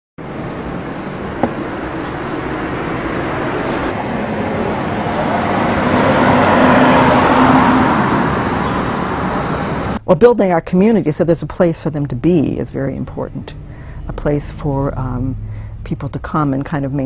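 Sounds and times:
road vehicle passing by: 0.2 - 10.0, 12.8 - 17.0.

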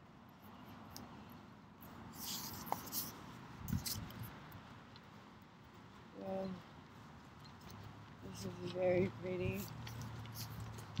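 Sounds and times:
hissy scrape: 2.1 - 4.0.

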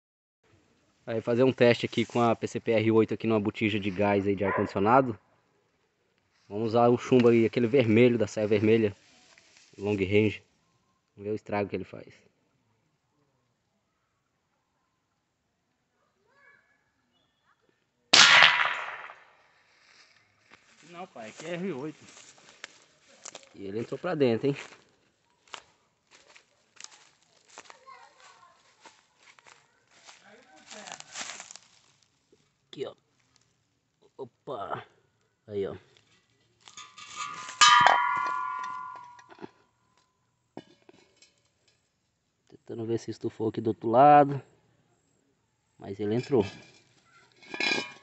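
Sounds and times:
air rifle shot: 18.2 - 19.3
metal cylinder scraping: 36.8 - 39.2, 47.3 - 48.0
ringing metallic clang: 36.8 - 39.4.

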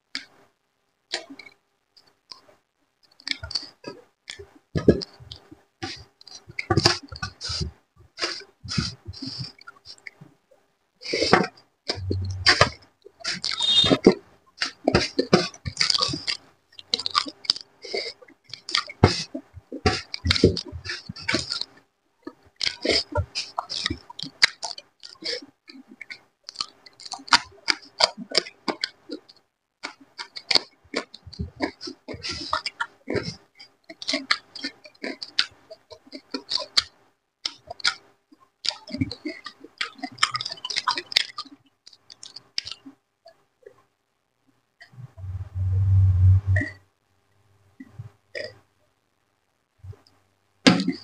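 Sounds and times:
man gulping drink: 11.9 - 12.8.

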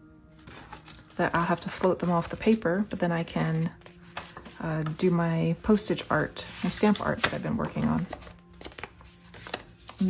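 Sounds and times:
faint background music: 0.0 - 10.0
paper taps and rustles: 3.5 - 5.1, 5.7 - 10.0.

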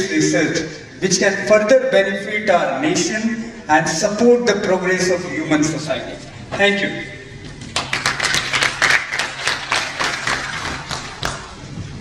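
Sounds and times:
audience applause: 7.7 - 11.6.

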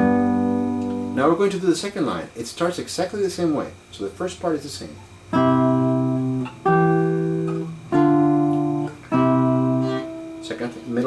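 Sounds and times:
classical guitar waltz chords: 0.0 - 1.2, 5.2 - 11.0.

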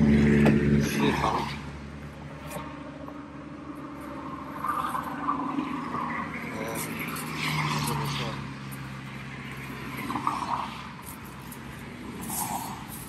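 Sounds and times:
vehicle passing on highway: 0.0 - 13.0.

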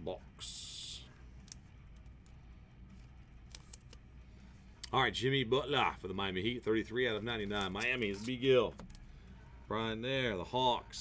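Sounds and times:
low steady hum: 0.0 - 11.0
cards clicking and rustling: 1.4 - 4.1, 7.5 - 9.0.

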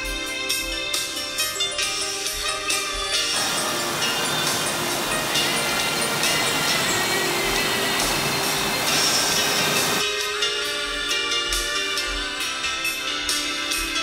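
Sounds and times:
background music: 0.0 - 14.0
brook rushing over rocks: 3.4 - 10.0.

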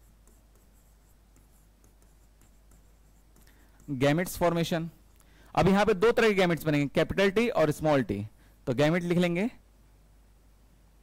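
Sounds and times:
pen writing on touchscreen: 0.0 - 4.6.

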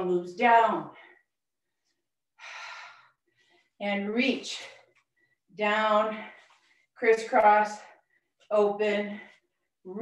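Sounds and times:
woman speaking: 0.0 - 1.0, 3.8 - 4.8, 5.6 - 6.4, 7.0 - 7.9, 8.5 - 9.3
woman breathing: 0.9 - 3.8.

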